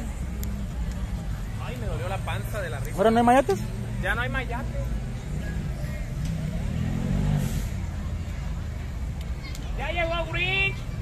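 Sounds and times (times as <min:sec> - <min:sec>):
passing vehicle engine rumble: 0:00.0 - 0:11.0.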